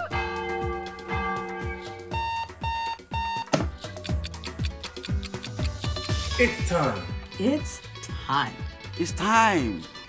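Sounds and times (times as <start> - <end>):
music with kick-drum beat: 0.1 - 7.2.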